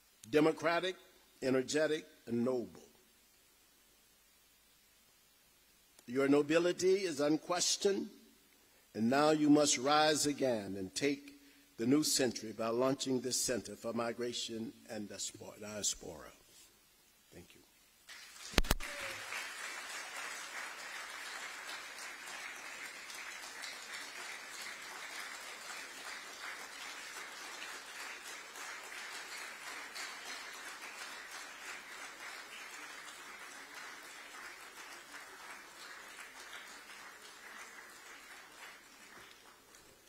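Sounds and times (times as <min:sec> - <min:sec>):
audience applause: 0:18.1 - 0:40.0.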